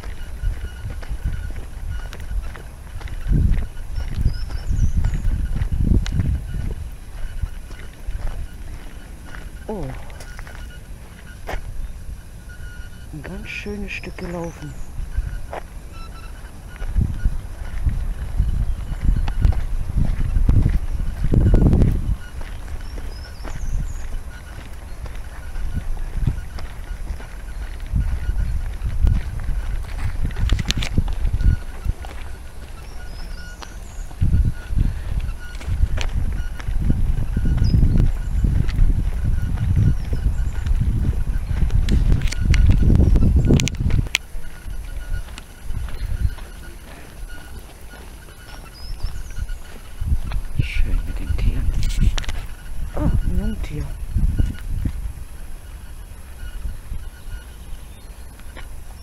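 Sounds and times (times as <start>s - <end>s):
faint bird chirps: 0.0s - 29.3s, 31.0s - 38.6s, 42.2s - 59.0s
footsteps on a path: 0.0s - 59.0s
wind buffeting microphone: 0.0s - 59.0s.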